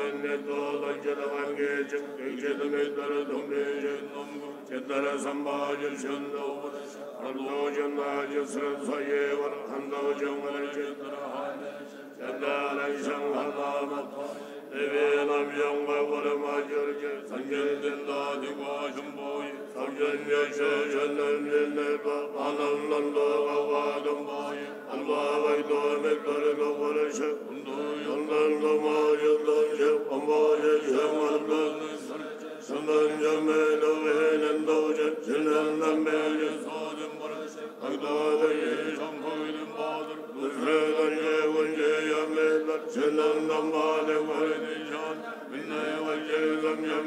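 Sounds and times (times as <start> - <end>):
monks chanting in unison: 0.0 - 47.0.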